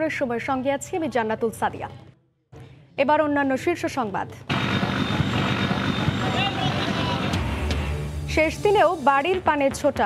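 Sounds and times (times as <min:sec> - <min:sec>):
large engine rumbling: 0:04.5 - 0:08.1.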